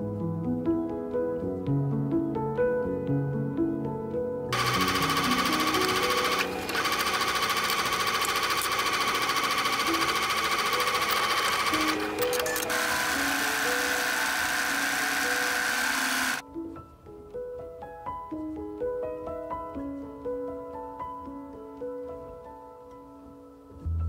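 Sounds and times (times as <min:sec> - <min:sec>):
soft background music: 0:00.0 - 0:24.0
sewing machine stitching: 0:04.5 - 0:16.4.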